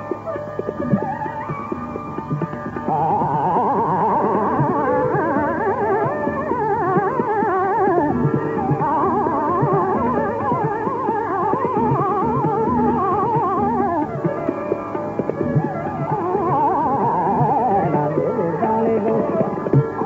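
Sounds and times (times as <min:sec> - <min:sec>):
fast ornamented melodic runs: 0:00.0 - 0:20.0.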